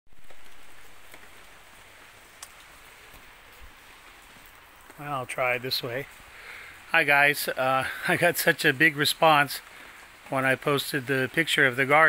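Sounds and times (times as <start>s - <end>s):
faint outdoor hiss: 0.1s - 12.0s.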